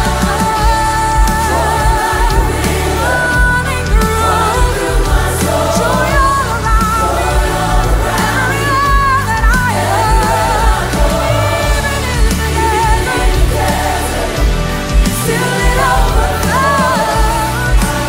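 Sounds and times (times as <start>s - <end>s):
backing vocalists singing: 0.0s - 18.0s
band with steady bass beat: 0.0s - 18.0s
lead singer singing: 0.0s - 18.0s.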